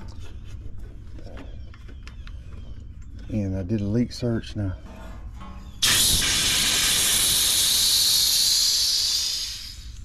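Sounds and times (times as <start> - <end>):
gas hissing from hose fitting: 5.8 - 10.0.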